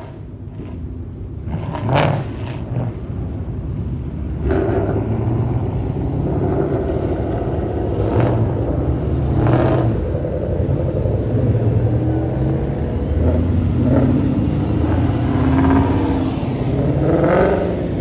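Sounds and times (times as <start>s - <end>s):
car engines driving past: 0.0s - 18.0s
cars revving loudly: 0.0s - 18.0s.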